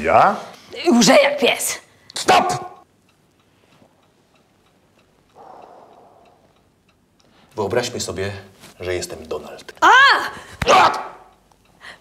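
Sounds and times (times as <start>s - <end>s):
clock ticking: 2.1s - 9.7s, 11.2s - 12.0s
soft rush of noise: 3.3s - 9.8s.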